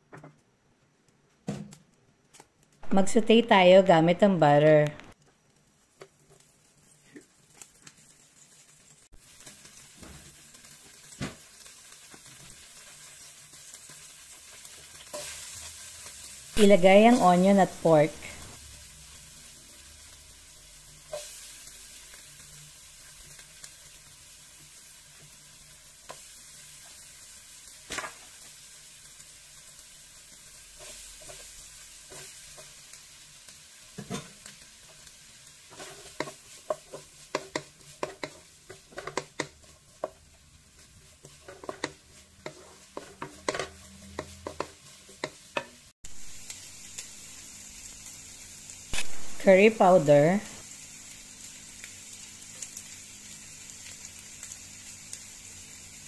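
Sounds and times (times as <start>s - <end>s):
food sizzling in a pan: 1.4s - 56.0s
wooden spatula stirring a pan: 5.2s - 16.5s, 18.3s - 47.0s.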